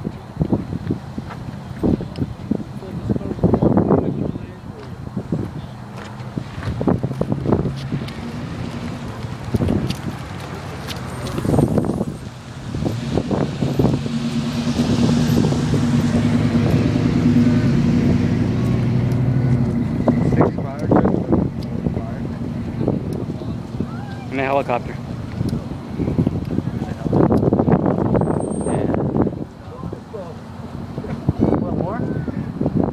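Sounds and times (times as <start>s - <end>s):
pickup truck engine passing: 0.6s - 32.9s
faint voices: 20.1s - 27.4s.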